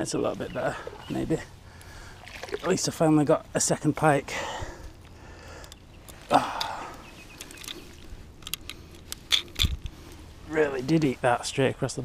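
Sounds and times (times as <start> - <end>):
breathy rush: 4.3 - 7.1
hands handling fishing lure: 4.8 - 10.3.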